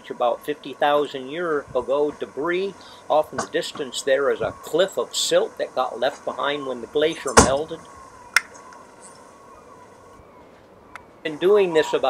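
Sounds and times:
faint background hiss: 0.0s - 12.0s
thin steady hum: 0.0s - 12.0s
sharp click: 8.3s - 8.8s.

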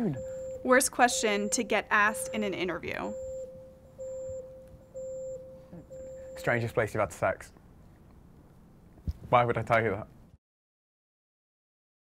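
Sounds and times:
electronic timer beeps: 0.0s - 6.9s.

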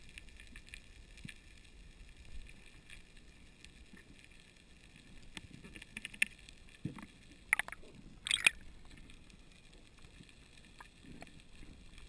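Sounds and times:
underwater ambience: 0.0s - 12.0s.

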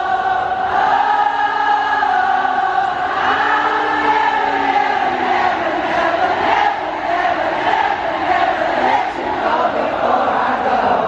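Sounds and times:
singer holding long notes: 0.0s - 11.0s.

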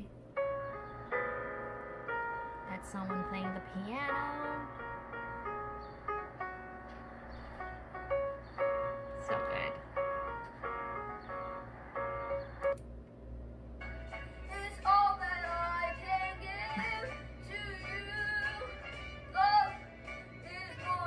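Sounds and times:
piano piece: 0.0s - 12.8s, 13.8s - 21.0s
young person singing: 14.4s - 21.0s.

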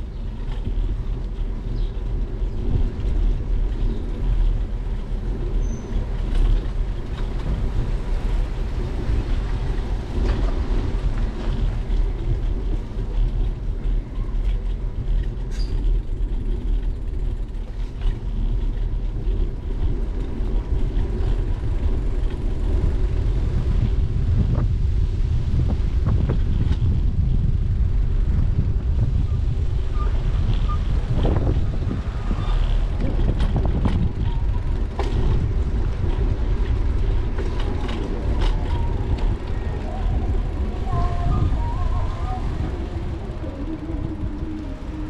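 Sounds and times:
bicycle tyre and road noise: 0.0s - 45.0s
wind rumble on microphone: 0.0s - 45.0s
bike rattling clicks and knocks: 9.3s - 23.2s, 30.1s - 41.1s.

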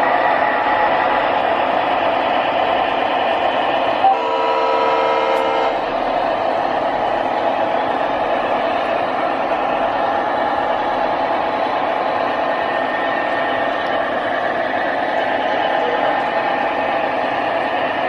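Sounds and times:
electronic train horn blast: 4.0s - 5.8s.

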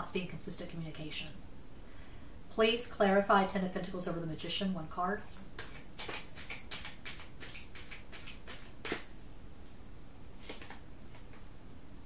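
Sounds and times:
cards being shuffled: 5.3s - 9.1s, 10.4s - 11.4s.

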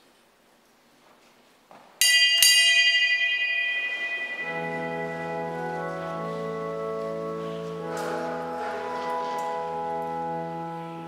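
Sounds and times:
small high-pitched bell ringing: 2.0s - 5.9s
organ chords: 4.3s - 11.0s.

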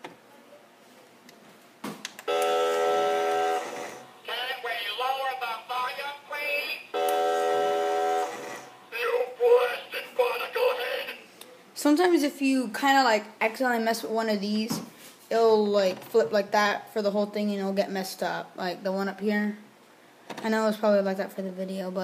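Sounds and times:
held electronic note: 2.3s - 4.3s, 6.9s - 8.9s
recorded voice: 4.2s - 7.0s, 8.9s - 19.7s, 20.4s - 22.0s.

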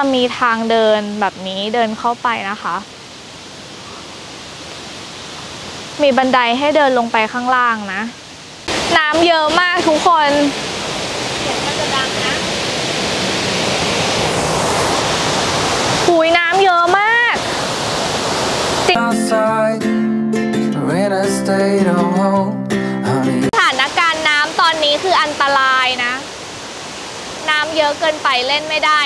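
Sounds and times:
waterfall rushing water: 0.0s - 19.0s, 23.5s - 29.0s
background guitar music: 18.9s - 23.6s.

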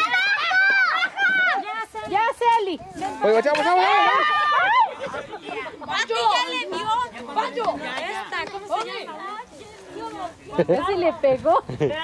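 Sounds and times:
people chattering excitedly: 0.0s - 12.0s.

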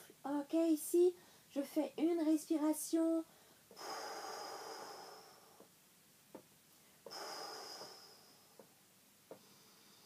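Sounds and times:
woman breathing deeply: 3.3s - 5.7s, 6.8s - 8.7s, 9.3s - 10.0s.

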